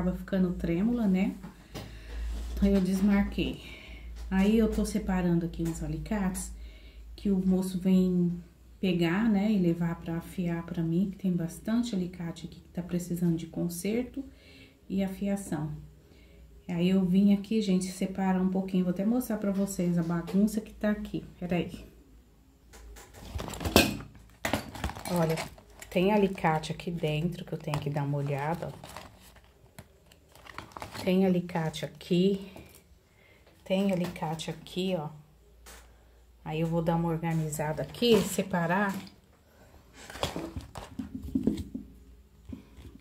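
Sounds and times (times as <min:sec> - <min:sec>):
plastic pouch rustling: 0:23.0 - 0:31.6, 0:39.9 - 0:41.6.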